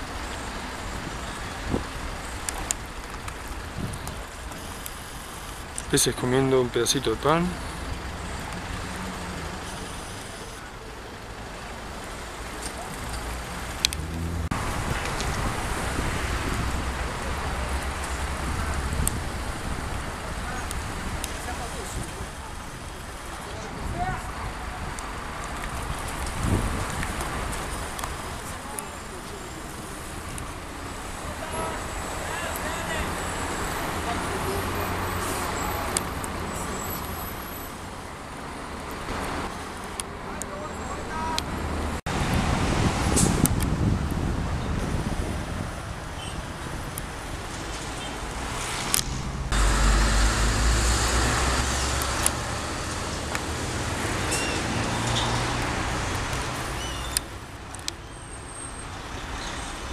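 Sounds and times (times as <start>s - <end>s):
cars passing: 0.0s - 59.9s.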